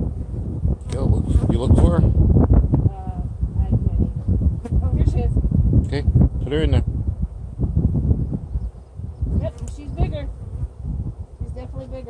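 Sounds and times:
honeybees buzzing: 2.2s - 12.0s.

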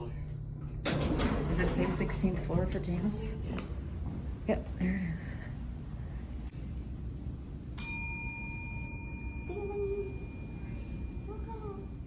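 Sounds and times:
service bell ding: 7.8s - 11.6s.

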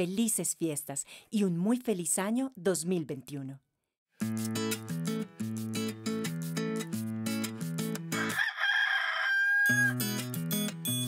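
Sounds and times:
guitar music: 4.2s - 8.4s, 9.7s - 11.0s.

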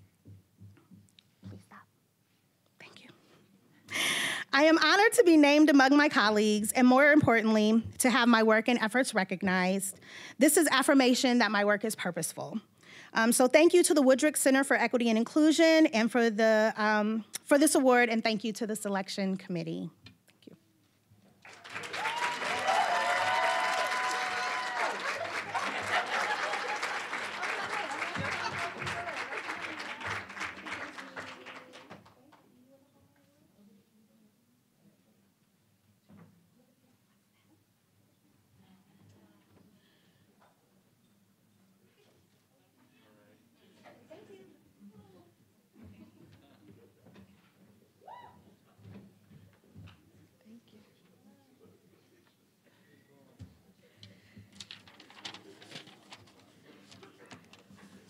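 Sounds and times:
faint room murmur: 0.0s - 4.0s, 19.8s - 58.0s
audience applauding: 21.4s - 32.1s
crowd cheering: 21.5s - 31.9s.

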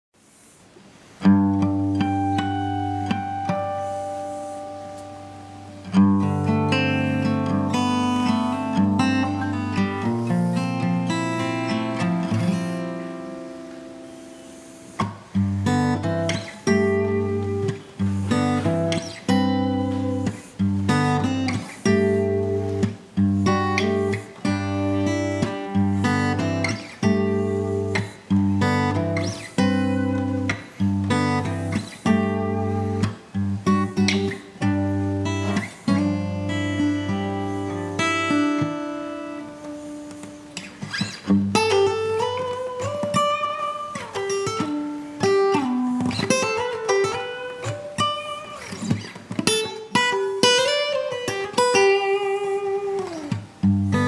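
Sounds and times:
acoustic guitar strumming chords: 1.1s - 54.0s.

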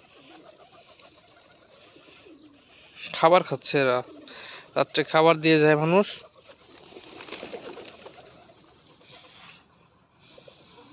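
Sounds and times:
pigeons cooing: 0.0s - 10.9s
wings fluttering: 0.0s - 10.9s.

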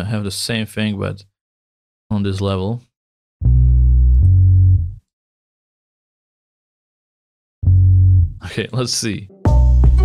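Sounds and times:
electric bass low notes: 3.4s - 5.0s, 7.6s - 8.4s.

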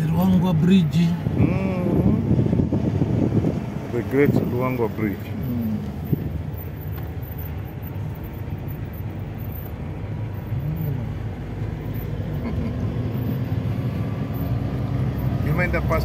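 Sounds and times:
car engine rumble from inside: 0.0s - 16.0s
tyres on road: 0.0s - 16.0s.

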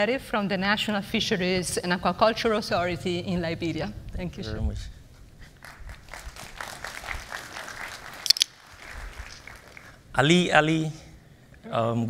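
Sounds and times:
scattered clicks: 8.2s - 8.6s.

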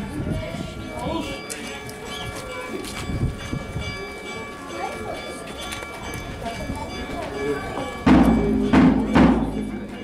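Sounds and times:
crowd footsteps on paved street: 0.0s - 10.0s
steady ringing tones: 3.4s - 10.0s.

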